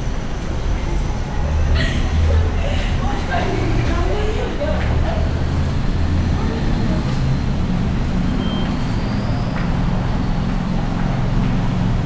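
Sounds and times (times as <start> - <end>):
traffic engine rumble: 0.0 - 12.0.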